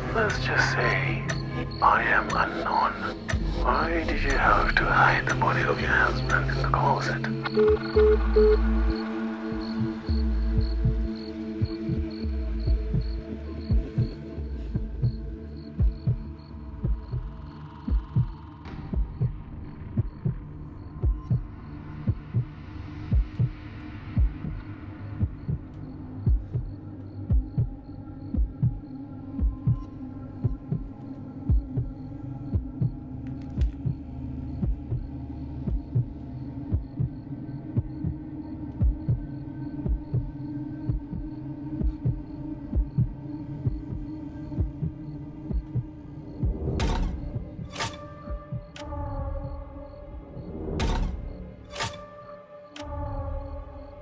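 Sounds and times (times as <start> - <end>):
low humming drone: 0.0 - 54.0
heartbeat thumps: 2.0 - 24.6, 25.2 - 47.7, 48.3 - 49.8.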